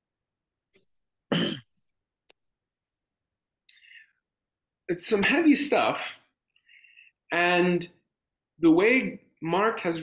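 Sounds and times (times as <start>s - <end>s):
man clearing his throat: 1.3s - 1.8s.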